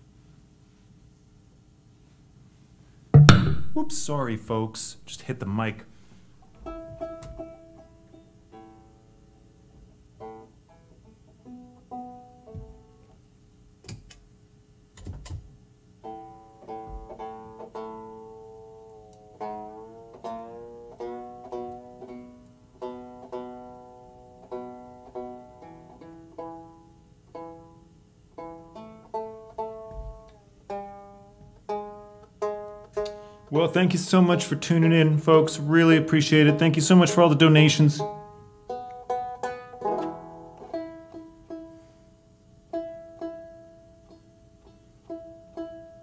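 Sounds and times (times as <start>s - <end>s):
handling knocks: 3.2s - 4.1s
banjo strings plucked: 3.2s - 9.4s, 10.2s - 13.0s, 16.0s - 46.0s.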